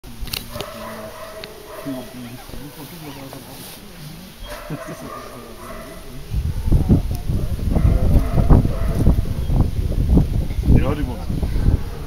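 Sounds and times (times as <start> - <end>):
person speaking: 0.4 - 6.4.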